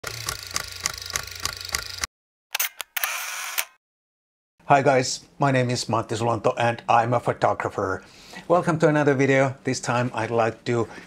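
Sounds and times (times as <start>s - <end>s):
rhythmic camera clicking: 0.0s - 3.8s
sharp camera clicks: 0.0s - 3.8s.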